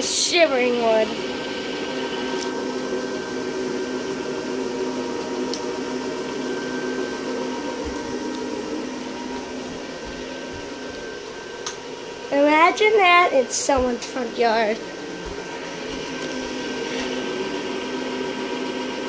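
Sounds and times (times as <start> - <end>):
electric blower fan humming: 0.0 - 19.0.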